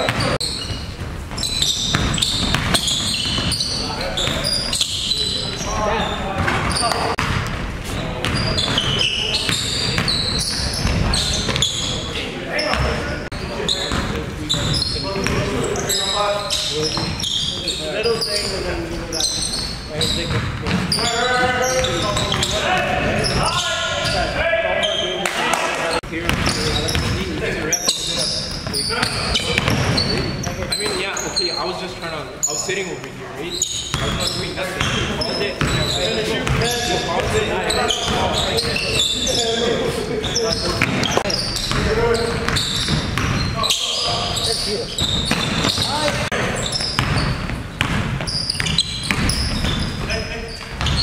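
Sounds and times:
basketball bouncing on wooden floor: 0.0s - 3.6s, 26.3s - 27.2s, 35.6s - 37.4s, 45.0s - 50.0s
sneakers squeaking on floor: 0.0s - 51.0s
voices calling out: 7.8s - 47.5s
basketball bouncing on hardwood: 46.9s - 49.8s.

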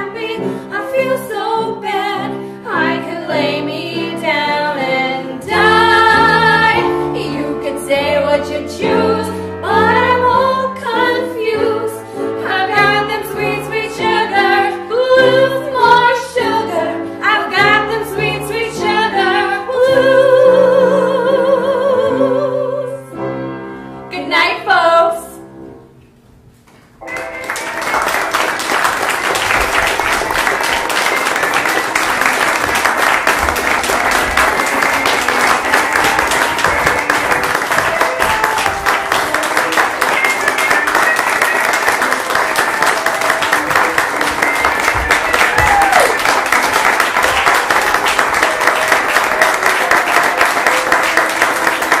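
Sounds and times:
audience applauding: 27.0s - 52.0s.

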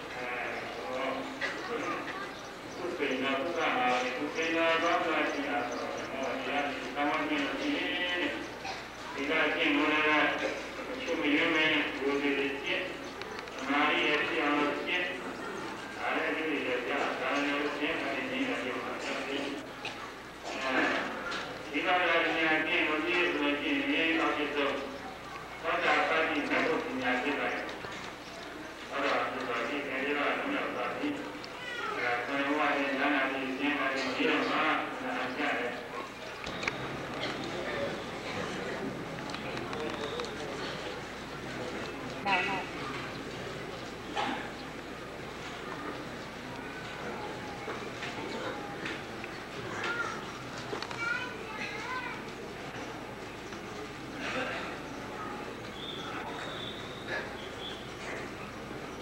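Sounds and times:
people talking: 0.0s - 59.0s
man speaking: 2.8s - 13.0s, 13.6s - 19.7s, 20.4s - 25.0s, 25.6s - 27.9s, 28.9s - 31.4s, 32.0s - 36.1s.

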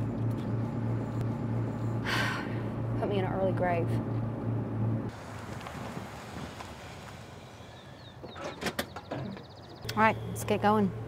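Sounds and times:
car tyres and engine: 0.0s - 11.0s.

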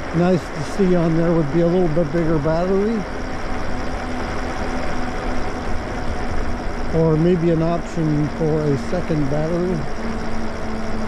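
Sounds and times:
faint steady hum: 0.0s - 11.0s
tyres on asphalt: 0.0s - 11.0s
wind rumble: 0.0s - 11.0s.

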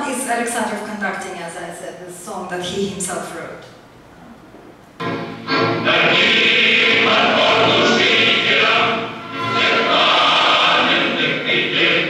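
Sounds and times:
choir singing: 5.1s - 12.0s.

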